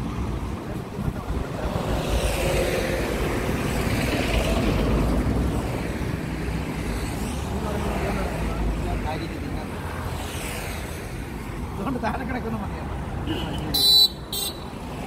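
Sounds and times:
highway traffic passing: 0.0 - 15.0.

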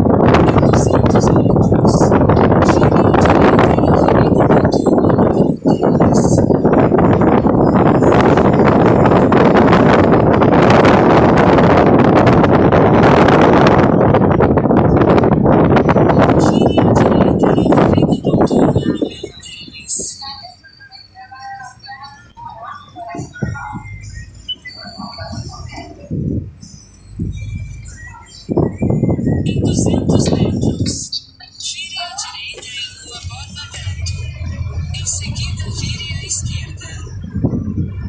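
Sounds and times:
wind buffeting microphone: 0.0 - 31.2, 32.3 - 38.0
wavering music or voice: 0.4 - 10.4, 15.7 - 26.3, 27.4 - 38.0.

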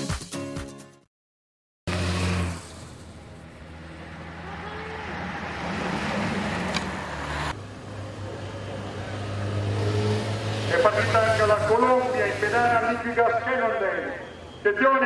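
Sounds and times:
road and wind noise: 1.9 - 15.0.

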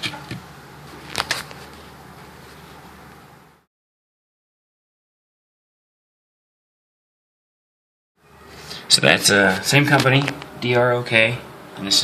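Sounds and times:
outdoor ambience hiss: 0.0 - 3.7, 8.2 - 12.0.

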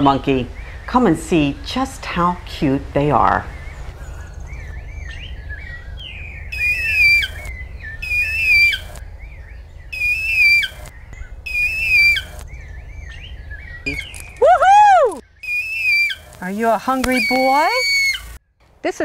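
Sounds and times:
eagle high whistled calls: 3.4 - 18.4
person calling woohoo: 13.9 - 15.2, 17.1 - 18.3.

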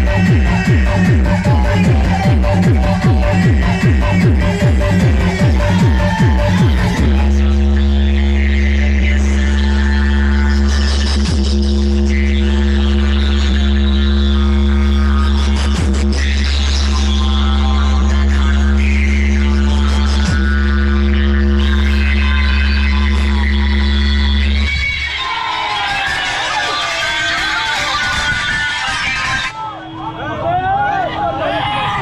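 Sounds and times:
electronic dance music with deep bass: 0.0 - 29.7.

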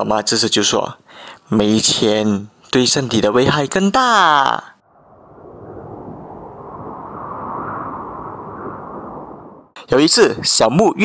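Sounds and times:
cold wind blowing: 4.8 - 9.8.

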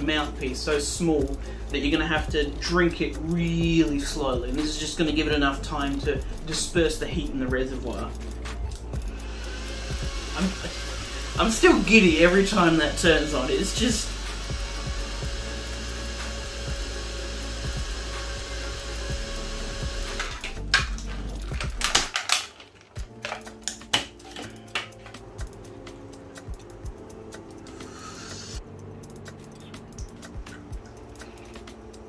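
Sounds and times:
pump and fan humming: 8.9 - 22.3
handling clicks and knocks: 20.4 - 25.2.

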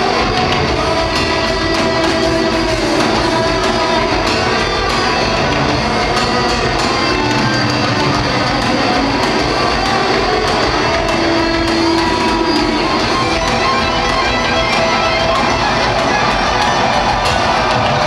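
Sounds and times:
heavy metal band playing live: 0.0 - 18.0.

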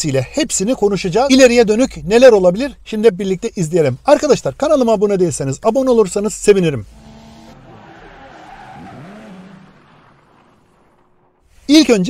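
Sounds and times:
tyres squealing: 6.8 - 11.4
car engine revving: 6.8 - 11.5.

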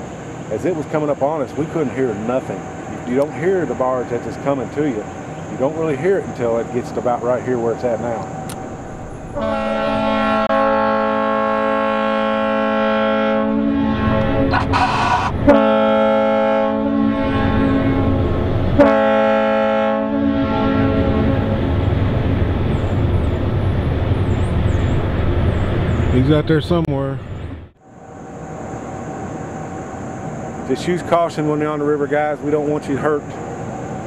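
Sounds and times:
steady low rumble: 0.6 - 11.1
boat horn blasts: 9.1 - 21.6.

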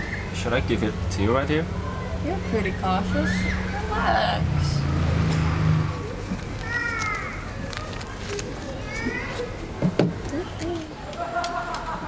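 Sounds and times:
woman laughing: 11.1 - 12.0.

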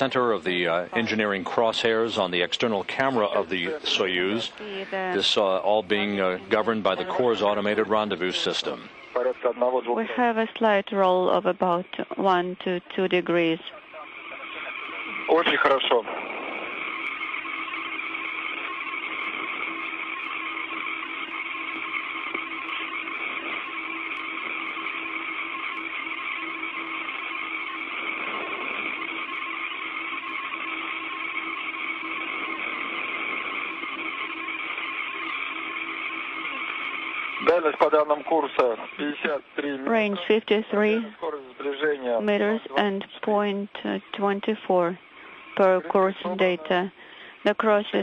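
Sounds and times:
voice over radio: 0.0 - 10.8, 11.4 - 16.2, 36.5 - 48.0
faint hum tones: 0.0 - 48.0
radio channel hiss: 0.0 - 48.0.

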